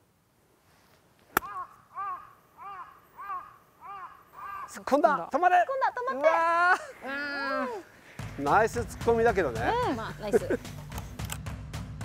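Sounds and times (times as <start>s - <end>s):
golf club striking ball: 1.3s - 1.6s
crow cawing: 1.4s - 5.0s.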